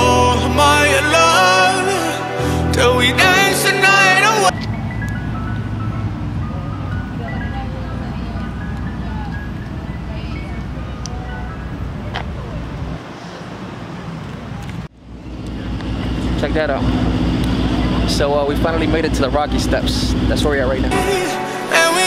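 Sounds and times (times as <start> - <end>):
pop song with singing: 0.0 - 4.8, 19.6 - 22.0
ice cream truck chime melody: 0.0 - 12.1
low traffic rumble: 0.0 - 21.4.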